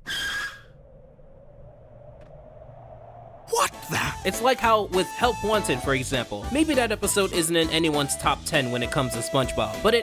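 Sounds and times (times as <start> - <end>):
low rumble: 0.6 - 3.5.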